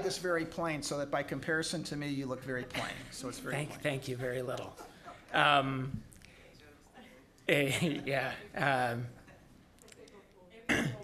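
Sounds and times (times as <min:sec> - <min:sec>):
man clearing his throat: 0:10.7 - 0:11.0.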